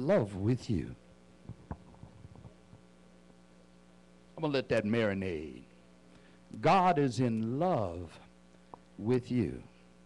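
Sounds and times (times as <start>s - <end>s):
electrical hum: 0.0s - 10.0s
microphone handling knocks: 1.4s - 2.8s.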